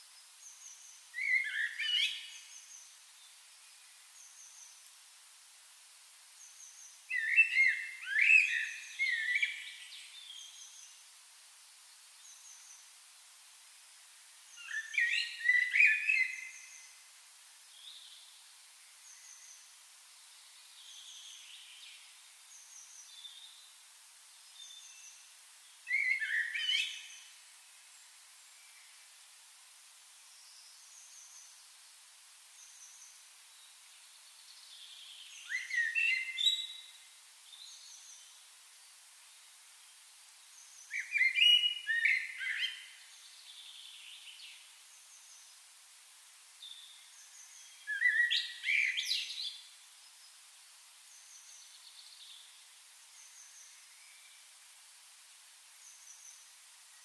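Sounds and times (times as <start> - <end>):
songbird warbling: 35.4 - 36.9, 40.9 - 43.0, 47.8 - 49.6.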